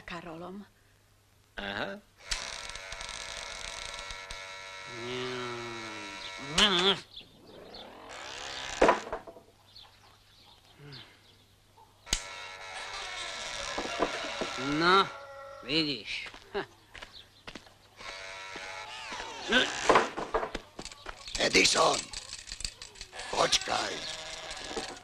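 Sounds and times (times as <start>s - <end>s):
electric doorbell buzzing: 2.2s - 6.6s, 12.1s - 14.8s.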